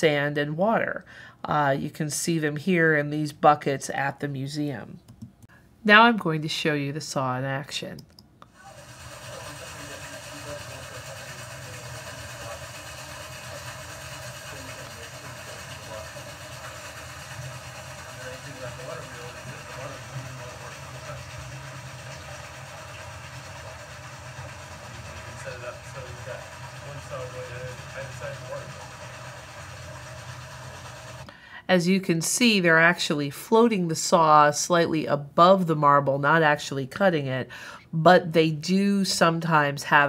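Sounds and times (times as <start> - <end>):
water-powered saw running: 8.5 - 31.3.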